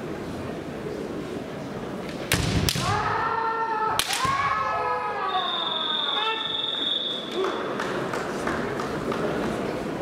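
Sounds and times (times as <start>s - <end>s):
bamboo sword strike crack: 2.3s - 3.0s, 4.0s - 4.4s.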